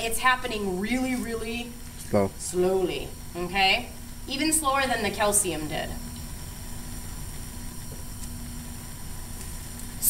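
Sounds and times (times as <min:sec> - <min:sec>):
gas flame hissing: 0:00.0 - 0:10.0.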